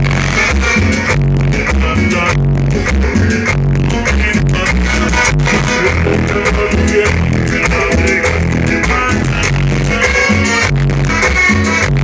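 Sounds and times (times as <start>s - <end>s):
band playing latin dance music: 0.0s - 12.0s.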